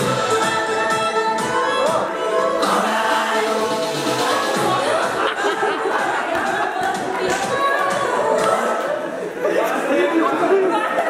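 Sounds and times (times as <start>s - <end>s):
overlapping conversational chatter: 4.2s - 11.0s.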